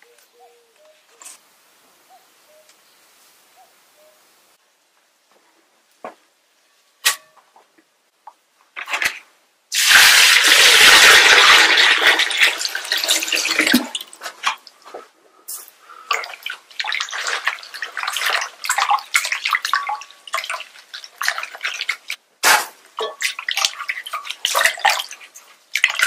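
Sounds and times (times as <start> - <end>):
water pouring into a bowl: 9.8 - 14.1
hands swishing greens in water: 16.1 - 26.0.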